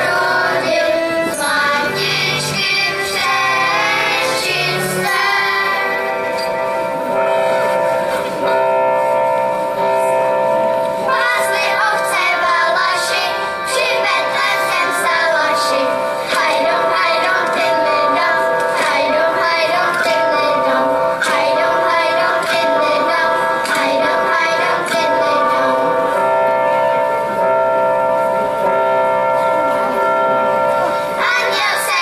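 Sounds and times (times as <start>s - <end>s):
children's choir singing: 0.0s - 8.5s, 10.4s - 32.0s.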